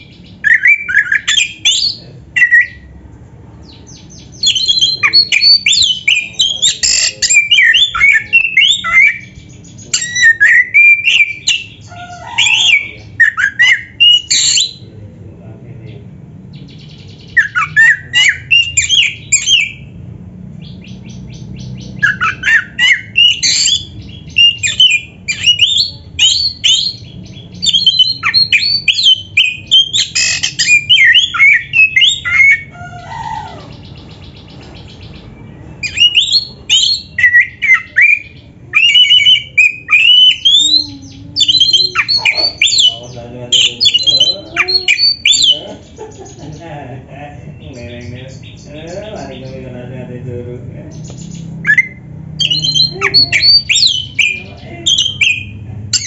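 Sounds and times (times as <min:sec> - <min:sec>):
bird singing whistles and chatters: 0:00.0 - 0:02.9, 0:03.6 - 0:14.9, 0:15.9 - 0:20.0, 0:20.6 - 0:46.7, 0:50.9 - 0:56.0.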